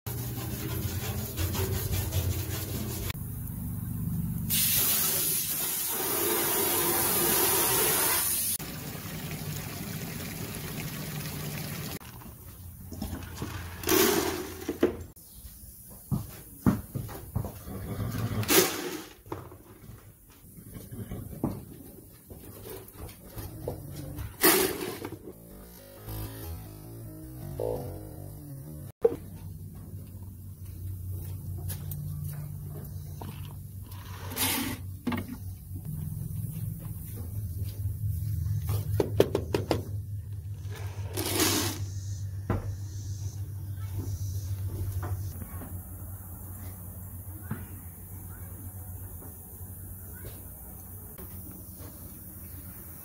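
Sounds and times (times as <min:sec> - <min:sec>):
brush scrubbing: 0:00.1 - 0:03.2
water splashing in a trough: 0:08.6 - 0:12.3.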